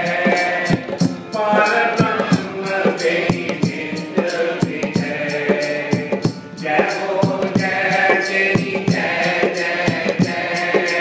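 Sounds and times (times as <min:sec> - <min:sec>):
harmonium: 0:00.0 - 0:11.0
man singing devotional song: 0:00.0 - 0:11.0
percussion strokes: 0:00.0 - 0:11.0.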